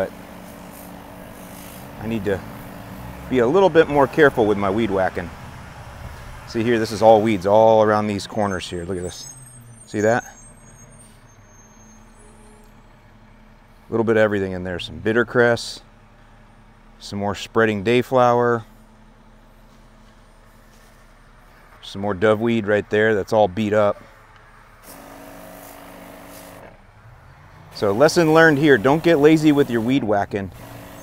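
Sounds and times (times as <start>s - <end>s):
weed sprayer pump hum and hiss: 0.0s - 5.2s, 24.8s - 26.8s, 27.8s - 31.0s.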